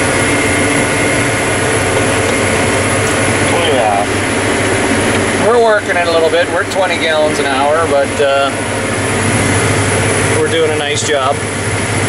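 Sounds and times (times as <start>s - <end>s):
tractor engine drone: 0.0s - 12.0s
person speaking: 3.3s - 4.2s.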